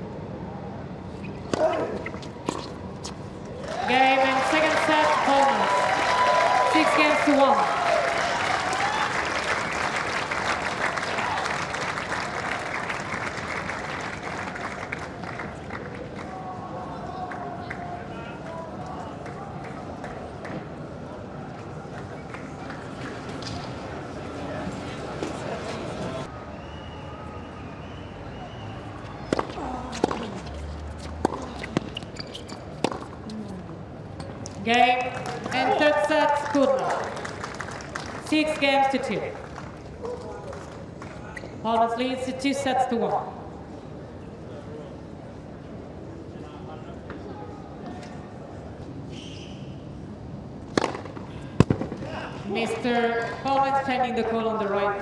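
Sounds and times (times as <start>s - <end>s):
murmur of many voices: 15.6s - 30.5s, 38.2s - 49.0s.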